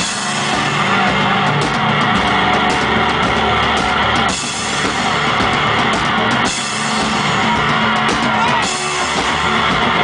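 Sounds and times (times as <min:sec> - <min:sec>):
distorted electric guitar: 0:00.0 - 0:10.0
drum kit played hard: 0:00.0 - 0:10.0.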